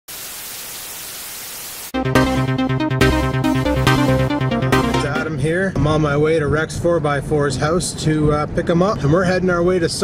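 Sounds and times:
tv static hiss: 0.1 - 2.0
electronic music: 2.0 - 5.4.

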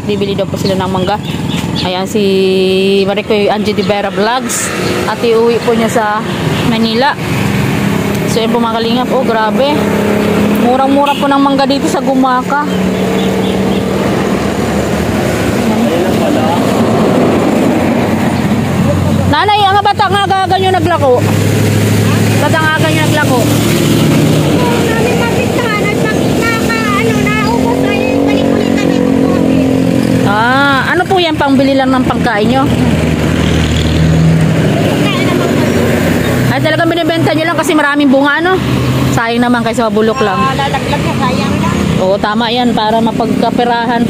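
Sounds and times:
large vehicle passing: 0.0 - 44.0.

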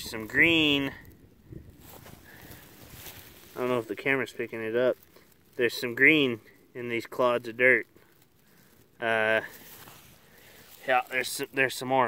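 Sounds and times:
dry grass rustling: 0.0 - 12.0.

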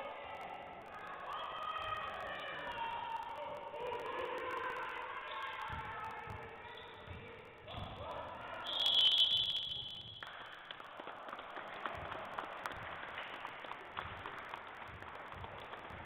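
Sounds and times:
murmur of voices: 0.0 - 9.7
scoreboard buzzer: 8.7 - 10.3
taps and squeaks on court: 8.7 - 10.8.

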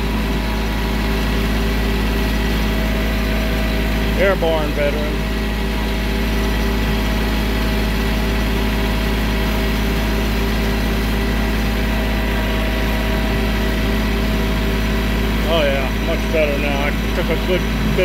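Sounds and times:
tractor diesel engine running: 0.0 - 18.0.

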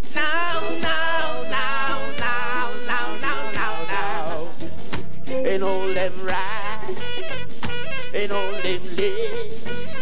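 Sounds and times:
live band playing: 0.0 - 10.0
man singing: 0.0 - 10.0.

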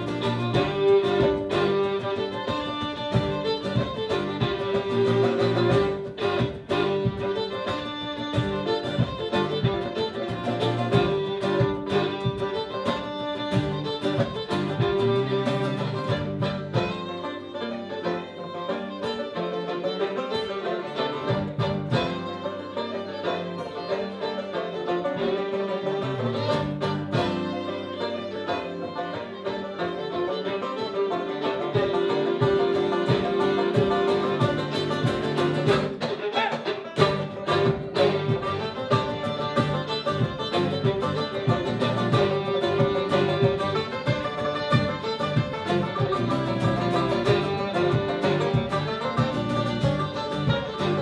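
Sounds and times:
fiddle melody: 0.0 - 51.0
strummed acoustic guitar: 0.0 - 51.0.

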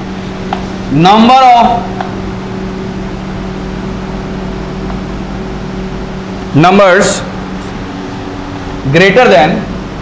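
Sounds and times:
machinery hum: 0.0 - 10.0.

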